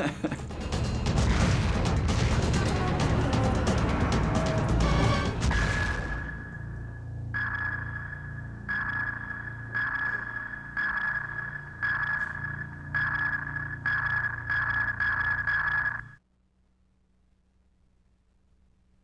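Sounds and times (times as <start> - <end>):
high sonar ping: 4.8 - 16.2.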